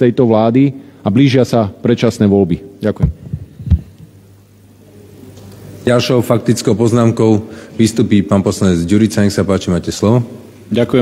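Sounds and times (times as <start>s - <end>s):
faint sound system hum: 0.0s - 11.0s.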